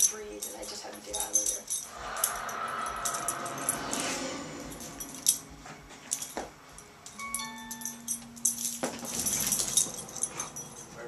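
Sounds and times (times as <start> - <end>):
dog collar tags jingling: 0.0 - 11.0.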